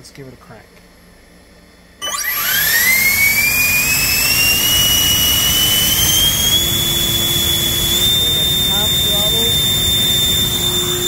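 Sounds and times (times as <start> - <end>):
electric ducted fan whining: 0.0 - 11.0.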